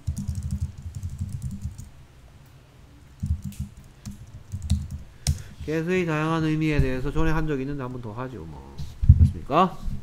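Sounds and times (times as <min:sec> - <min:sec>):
computer keyboard typing: 0:00.0 - 0:01.9, 0:03.2 - 0:05.4.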